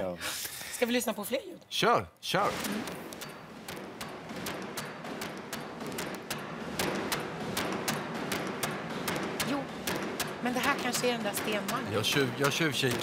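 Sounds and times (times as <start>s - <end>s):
trip hammer striking iron: 2.6s - 13.0s.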